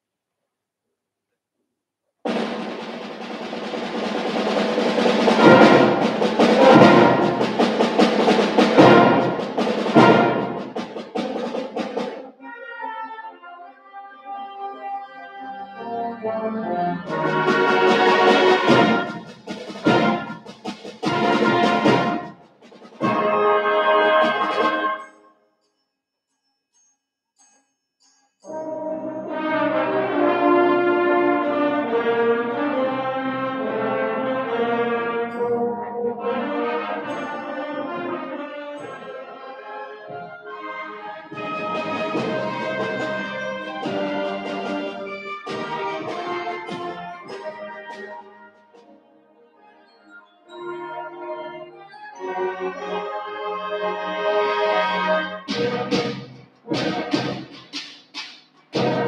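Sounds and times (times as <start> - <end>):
concert band playing: 2.3 - 12.2, 17.0 - 22.3, 23.0 - 25.0, 41.3 - 48.2, 55.5 - 59.0
sharp percussion strikes: 2.3 - 12.2, 17.1 - 25.2, 55.5 - 59.0
brass sustained notes: 4.5 - 11.4, 12.4 - 22.4, 23.0 - 25.1, 28.5 - 48.4.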